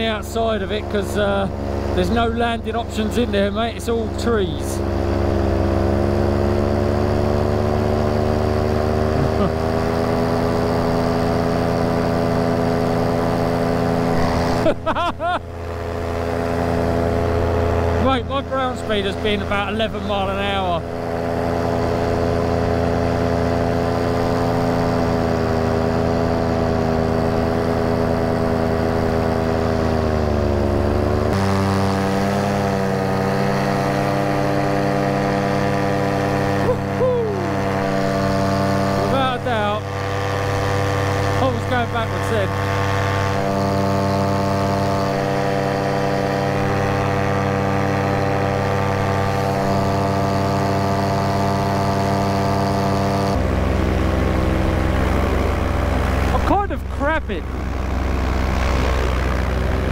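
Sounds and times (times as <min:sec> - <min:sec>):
paramotor engine and propeller: 0:00.0 - 0:59.9.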